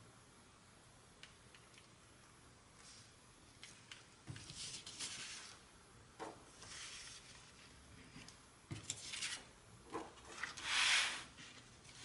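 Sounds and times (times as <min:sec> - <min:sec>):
paper sliding on cutting mat: 0:10.6 - 0:11.4.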